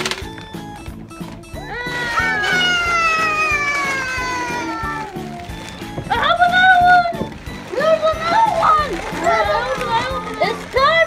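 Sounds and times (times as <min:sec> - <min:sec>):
background music with steady beat: 0:00.0 - 0:11.0
high-pitched wailing call: 0:01.6 - 0:05.4.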